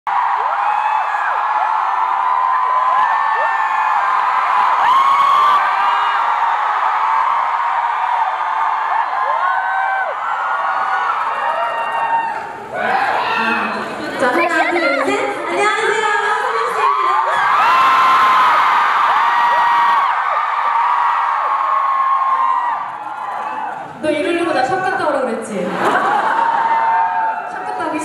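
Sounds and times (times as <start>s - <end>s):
audience screaming and cheering: 0.1s - 28.0s
people talking: 13.4s - 17.2s, 24.0s - 26.1s, 27.5s - 28.0s.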